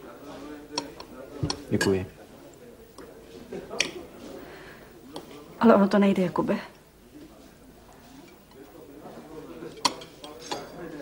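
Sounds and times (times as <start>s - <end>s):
cutlery clinking on china plates: 9.6s - 11.0s.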